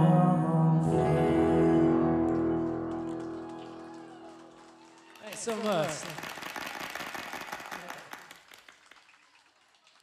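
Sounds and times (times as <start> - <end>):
audience clapping: 2.3 - 10.0.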